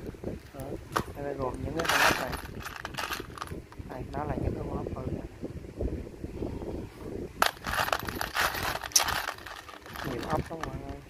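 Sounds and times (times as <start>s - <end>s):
metal screws clinking and rattling: 1.8s - 3.6s, 7.4s - 11.0s.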